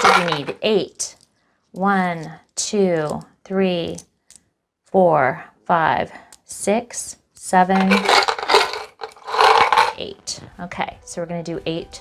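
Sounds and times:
glass tiles scraping on towel: 0.0 - 0.6, 7.7 - 10.0.

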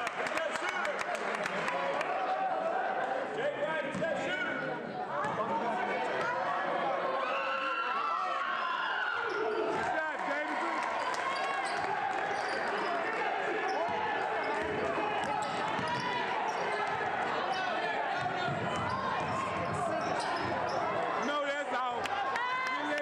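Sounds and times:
crowd chatter and calls: 0.0 - 23.0.

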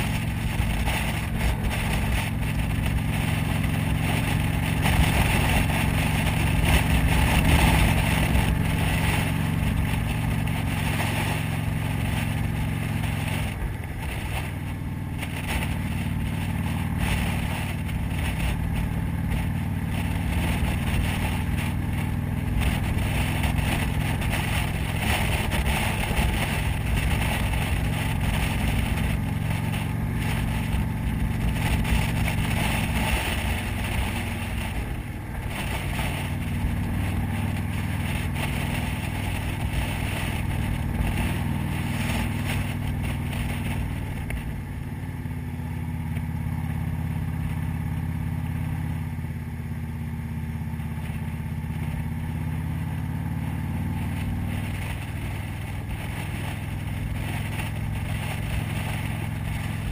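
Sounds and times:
wind rushing over microphone: 0.0 - 48.2, 50.6 - 59.9
motorcycle engine running: 0.0 - 59.9.

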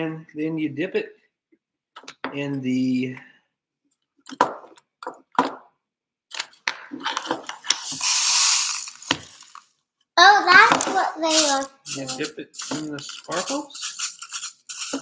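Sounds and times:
dry rustling of container: 7.2 - 9.7, 10.8 - 15.0
speech: 10.2 - 13.8
plastic toy pieces clicking: 10.7 - 15.0.

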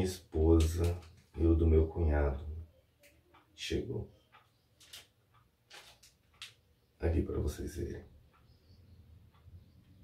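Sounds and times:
plastic bag crinkling: 5.7 - 6.2.

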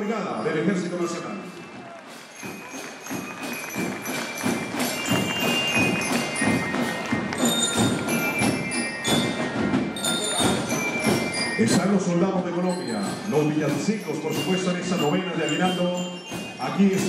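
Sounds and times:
military marching band playing: 0.8 - 17.0
drum strokes: 1.0 - 17.0
ringing bell-like notes: 2.3 - 17.0.

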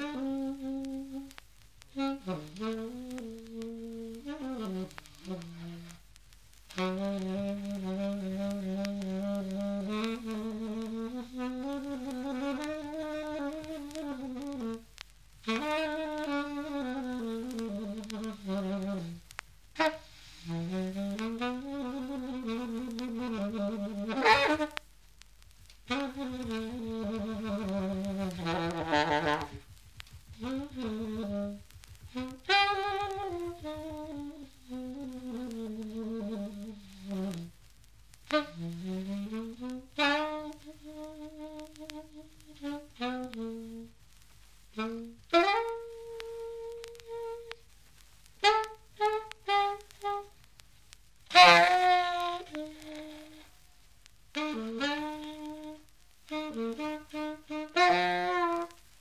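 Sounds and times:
alto saxophone playing jazz: 0.0 - 6.0, 6.6 - 24.8, 25.6 - 37.6, 38.2 - 44.0, 44.7 - 47.6, 48.4 - 50.6, 51.2 - 53.7, 54.3 - 59.0.

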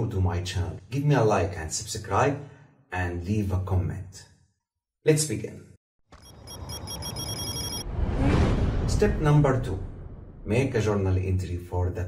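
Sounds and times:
high-pitched electronic bell ringing: 6.2 - 7.8
glitch noise rush: 6.2 - 8.3.

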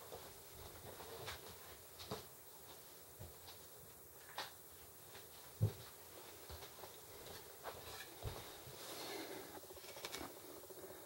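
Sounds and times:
rifle handling rustling: 9.8 - 10.4
small clicks: 9.8 - 10.4.

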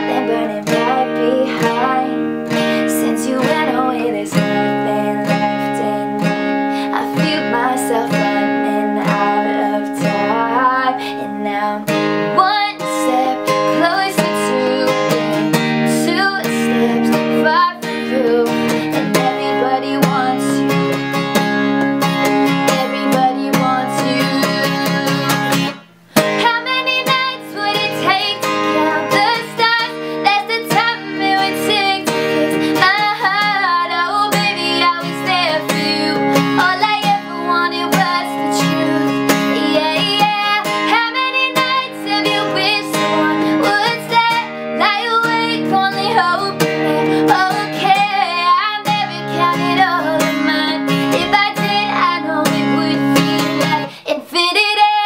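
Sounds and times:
acoustic guitar strummed: 0.0 - 54.0
woman singing: 0.0 - 55.0.

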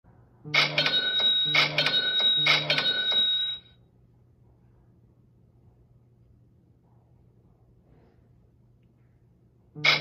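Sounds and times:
cash register style phone chime: 0.5 - 3.8.

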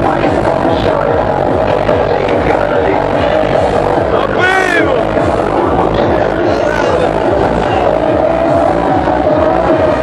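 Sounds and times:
psytrance music: 0.0 - 10.0.

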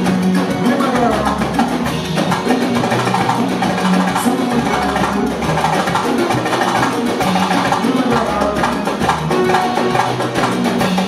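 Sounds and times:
busy drums and percussion: 0.0 - 11.0
live band music: 0.0 - 11.0.

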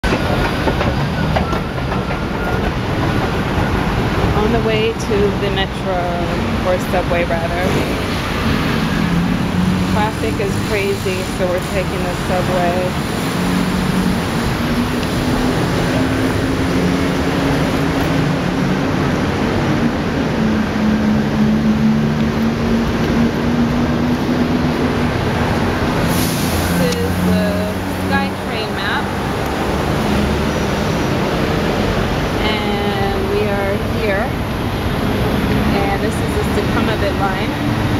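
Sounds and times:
loud rushing background din: 0.0 - 37.9
road traffic rumble: 0.0 - 37.9.

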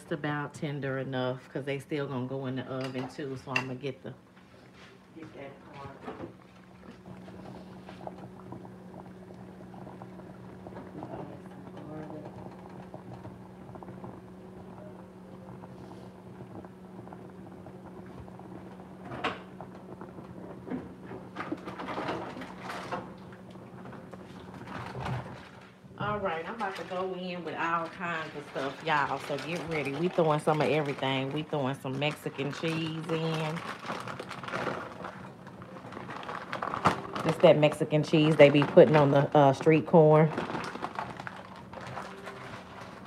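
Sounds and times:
steady low hum: 0.0 - 43.0
water boiling in a pot: 0.0 - 43.0.

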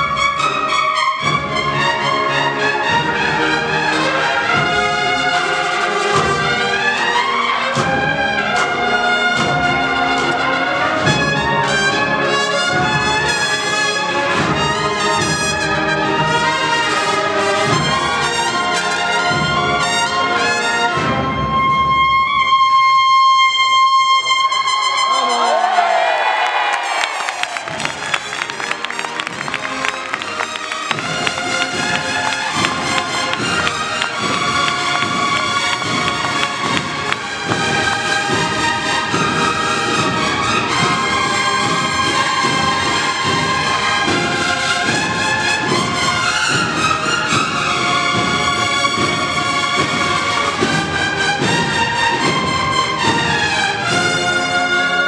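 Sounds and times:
bugle and drum band playing a march: 0.0 - 25.7, 27.5 - 55.0.

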